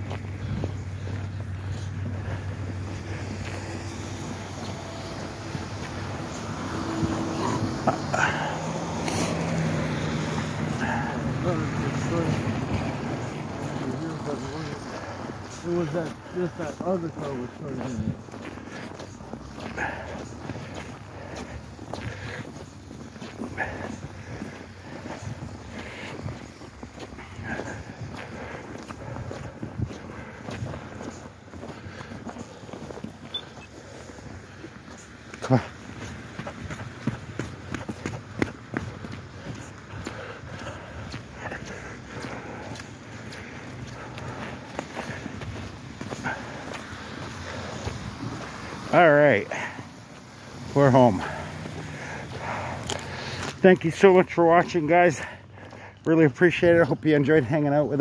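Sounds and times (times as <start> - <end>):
footsteps on snow: 0.0 - 58.0.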